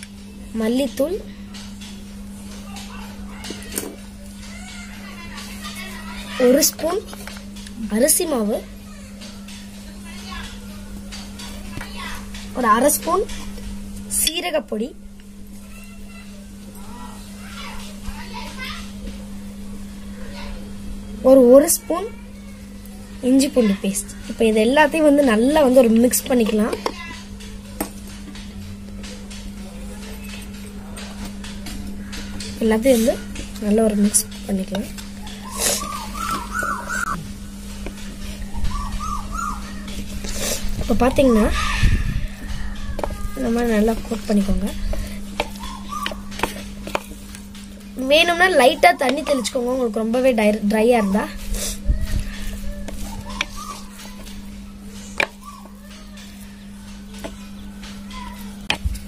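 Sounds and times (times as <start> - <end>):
steady low hum: 0.0 - 59.0
bird whistling: 35.3 - 37.2, 38.4 - 39.8, 45.5 - 46.3, 52.8 - 54.1, 55.4 - 55.8.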